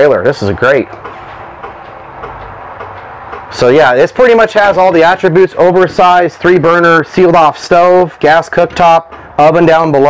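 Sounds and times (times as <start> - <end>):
low background hum and rumble: 0.0 - 10.0.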